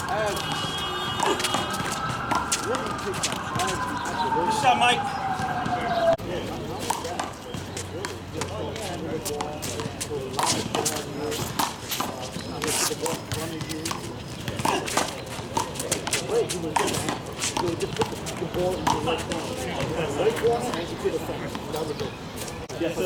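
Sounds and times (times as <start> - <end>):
sneakers scuffing on court: 0.0 - 6.1, 6.8 - 20.1.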